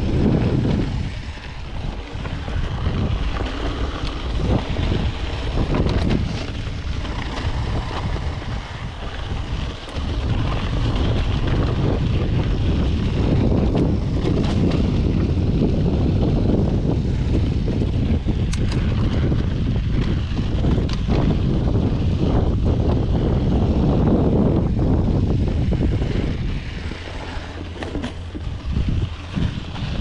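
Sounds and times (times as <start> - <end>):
bike tyres rolling on dirt: 0.0 - 30.0
wind buffeting microphone: 0.0 - 30.0
small clicks and rattles: 18.4 - 21.4.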